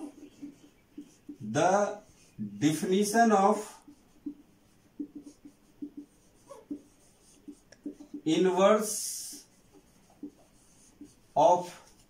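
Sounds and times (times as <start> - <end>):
marker writing on whiteboard: 0.0 - 12.0.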